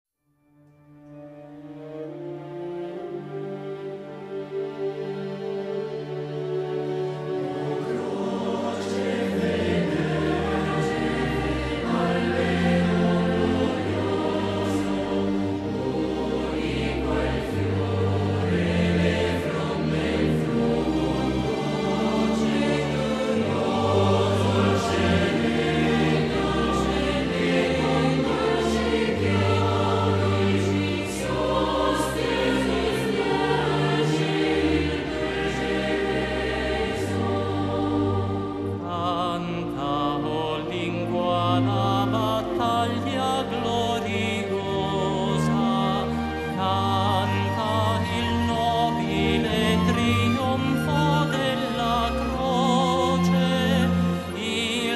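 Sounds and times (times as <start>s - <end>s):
choir singing a hymn: 1.7s - 54.9s.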